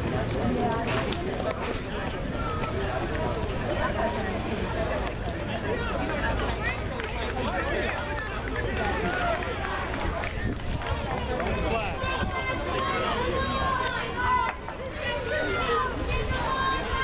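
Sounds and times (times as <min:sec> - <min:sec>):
voices talking and calling out: 0:00.0 - 0:17.0.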